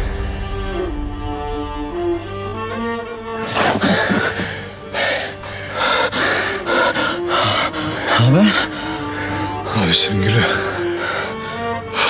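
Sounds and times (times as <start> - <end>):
soft background music: 0.0 - 12.0
man gasping for breath: 3.4 - 9.7.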